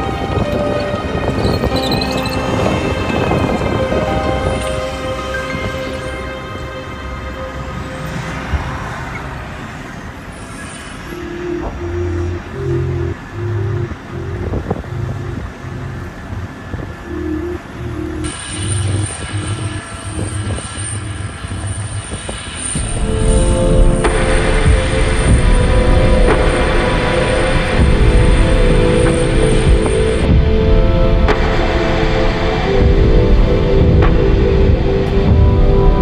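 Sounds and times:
dramatic music with pulsing beat: 0:00.0 - 0:09.1, 0:22.7 - 0:36.0
vehicle noise: 0:00.0 - 0:36.0.

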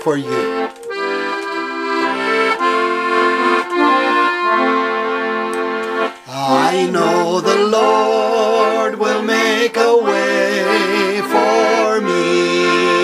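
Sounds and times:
piano accordion chords: 0:00.0 - 0:13.0
man and woman singing: 0:06.3 - 0:13.0.

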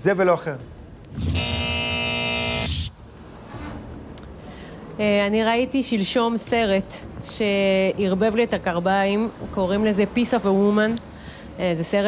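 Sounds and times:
electronic buzzing tone: 0:01.1 - 0:02.9.

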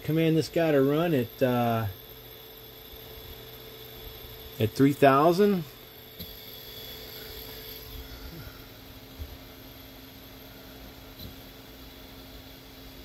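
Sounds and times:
servo motor humming: 0:04.0 - 0:09.4.

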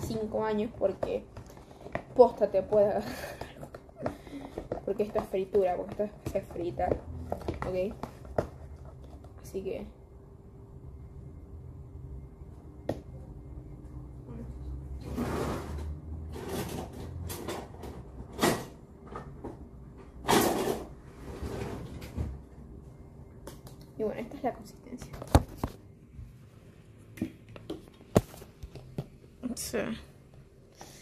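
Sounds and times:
low steady hum: 0:00.0 - 0:31.0.

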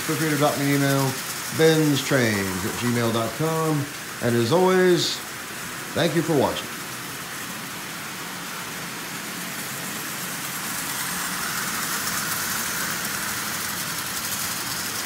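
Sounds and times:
tin wheels rattling: 0:00.0 - 0:15.0
toy train motor humming: 0:00.0 - 0:15.0.

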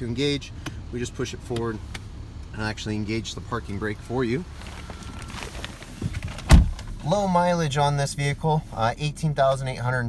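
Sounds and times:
shuffling and handling noise: 0:04.1 - 0:06.9
car door shutting: 0:05.0 - 0:07.0.

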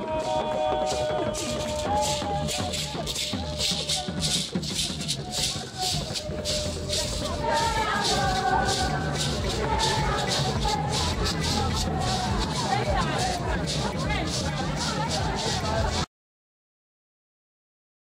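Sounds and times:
crowd singing: 0:00.0 - 0:16.1
steady shaker beat: 0:00.0 - 0:16.1.

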